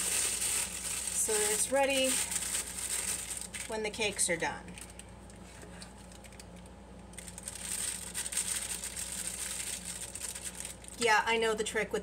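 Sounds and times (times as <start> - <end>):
plastic piping bag crinkling: 0.0 - 11.2
low steady hum: 0.0 - 12.0.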